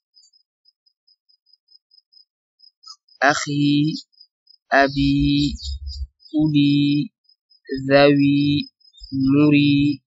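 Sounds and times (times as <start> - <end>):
faint cricket chirps: 0.1 - 10.0.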